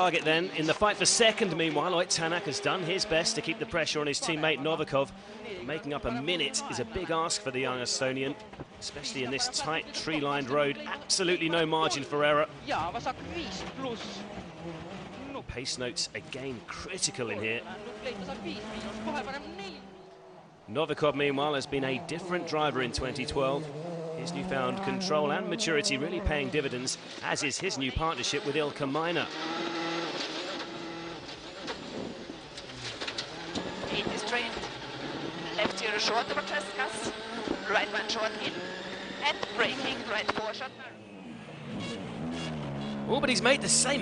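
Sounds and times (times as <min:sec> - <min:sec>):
rally car engine running: 0:00.0 - 0:44.0.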